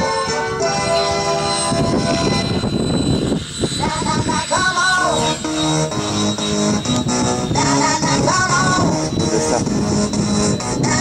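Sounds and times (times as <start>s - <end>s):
music: 0.0s - 11.0s
model helicopter rotors rushing: 0.2s - 11.0s.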